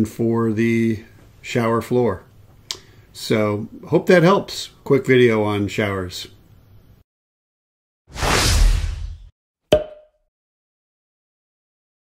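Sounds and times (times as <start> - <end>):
swoosh sound effect: 8.1 - 9.3.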